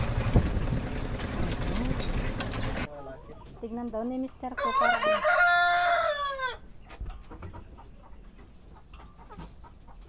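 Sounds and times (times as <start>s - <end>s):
rooster crowing: 4.6s - 6.7s.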